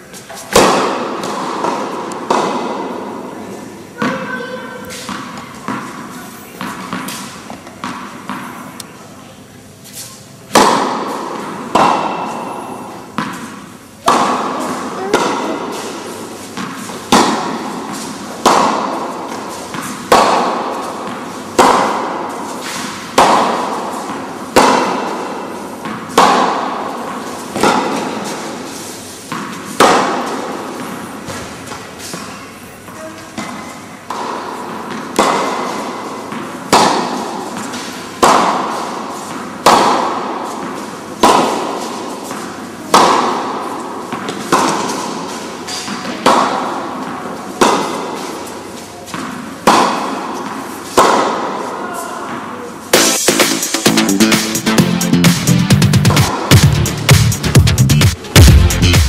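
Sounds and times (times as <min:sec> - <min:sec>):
tennis ball hit with rackets: 0:00.2 - 0:03.4, 0:04.0 - 0:08.8, 0:10.5 - 0:53.6, 0:56.1 - 0:56.6.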